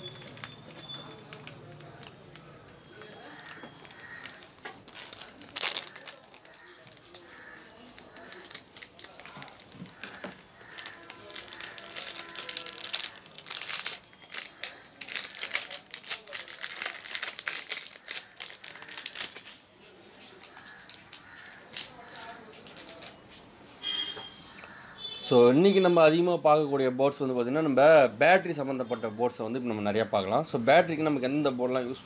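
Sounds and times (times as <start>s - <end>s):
electronic parts clicking and rattling: 0.0s - 7.1s
plastic packaging crinkling: 0.0s - 23.2s.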